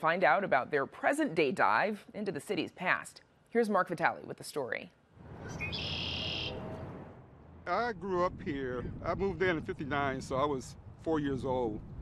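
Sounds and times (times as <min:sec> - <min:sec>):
bird calling: 0:05.4 - 0:06.7
low background rumble: 0:06.5 - 0:12.0.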